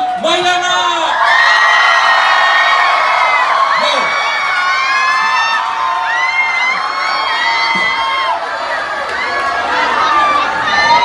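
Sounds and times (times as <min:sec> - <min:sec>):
audience cheering and whooping: 0:00.8 - 0:11.0.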